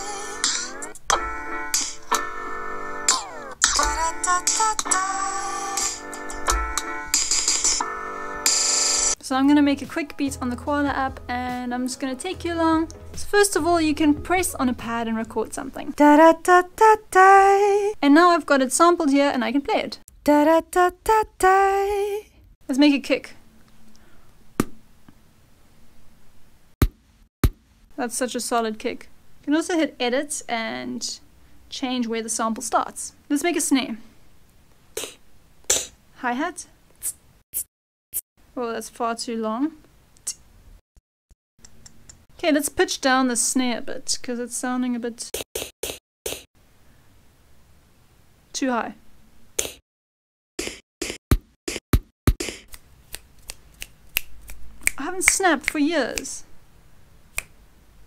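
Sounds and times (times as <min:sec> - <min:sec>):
kick drum hit: 0:06.5 - 0:06.8, 0:50.6 - 0:52.5.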